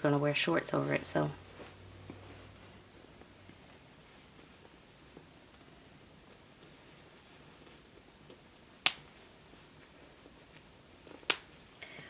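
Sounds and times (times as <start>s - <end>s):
doll clothing fastener snaps: 8.8s - 9.2s, 11.2s - 11.5s.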